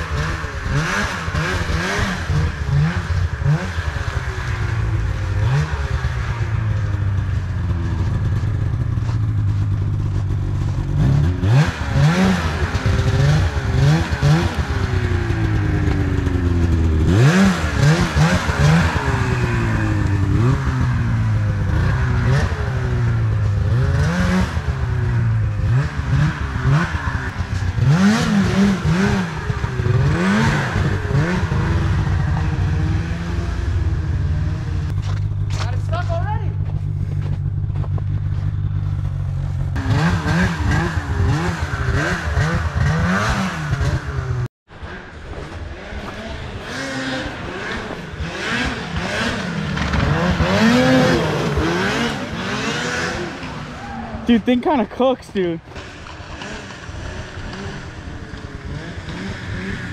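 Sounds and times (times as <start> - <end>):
snowmobile engine revving: 0.0 - 59.9.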